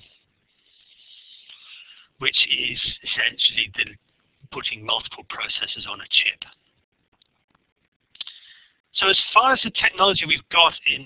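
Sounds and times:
faint hiss: 0.0 - 3.1.

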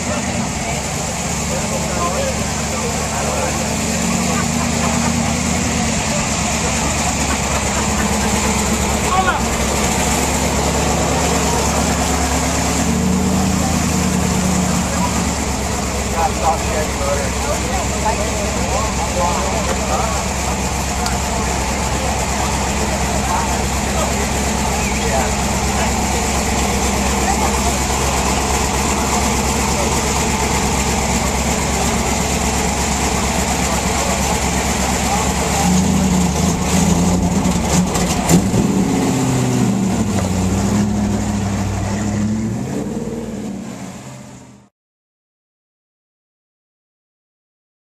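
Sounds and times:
crowd chatter: 0.0 - 43.7
truck engine idling and revving: 0.0 - 44.7.

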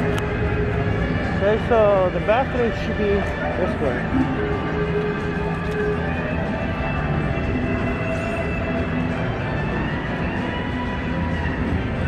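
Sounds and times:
long held electronic notes: 3.4 - 12.0
slot machine tones and music: 4.0 - 4.9.

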